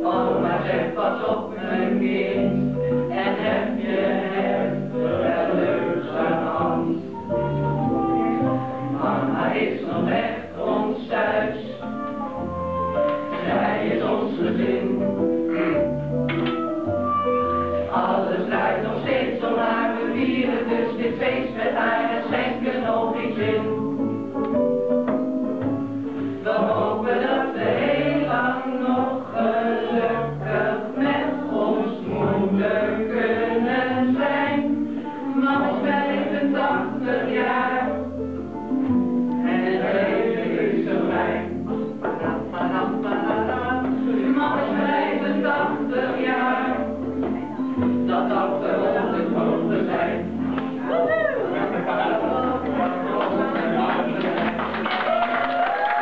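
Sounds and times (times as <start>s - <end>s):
group of people singing: 0.0s - 12.0s, 13.0s - 15.9s, 17.8s - 24.4s, 26.3s - 38.1s, 39.3s - 56.0s.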